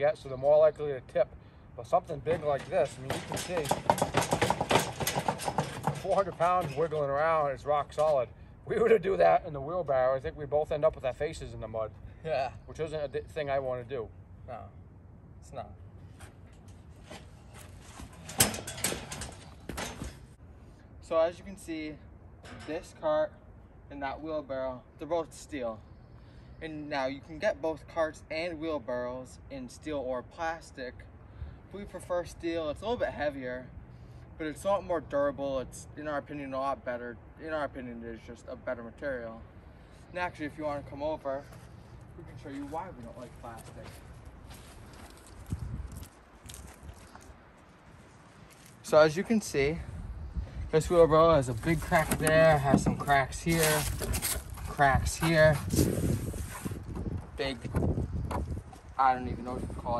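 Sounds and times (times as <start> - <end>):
steel cart knocks and clanks: 2.3 - 7.1, 17.9 - 20.3
footsteps on soft dirt: 41.4 - 48.9.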